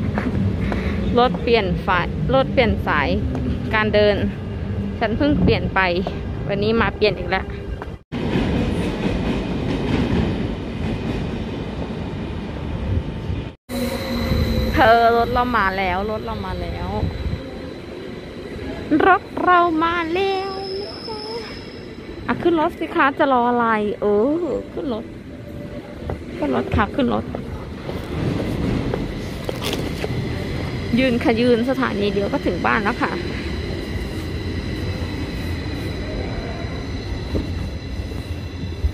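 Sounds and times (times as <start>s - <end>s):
train low rumble: 0.0s - 38.9s
woman's voice: 1.1s - 4.4s, 5.0s - 7.6s, 14.7s - 17.1s, 18.9s - 21.6s, 22.3s - 25.1s, 26.4s - 27.4s, 30.9s - 33.4s
train wheels squealing: 13.7s - 23.2s, 29.0s - 38.9s
high-pitched whine: 13.7s - 25.0s.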